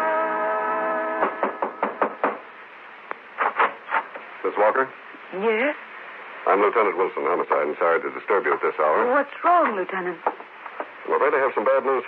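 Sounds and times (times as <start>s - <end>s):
knocking on a door: 1.2s - 2.5s.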